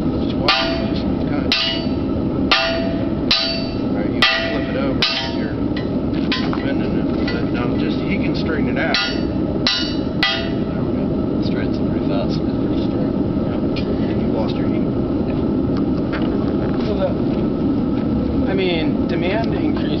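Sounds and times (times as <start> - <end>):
forge roaring: 0.0 - 20.0
hammer ringing on anvil: 0.4 - 7.5, 8.8 - 10.8
faint voices: 10.4 - 20.0.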